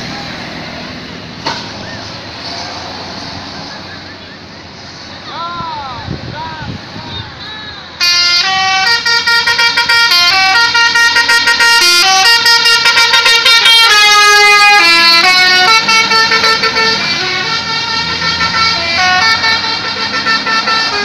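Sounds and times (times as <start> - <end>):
musical bus horn playing tune: 8.0 - 21.0.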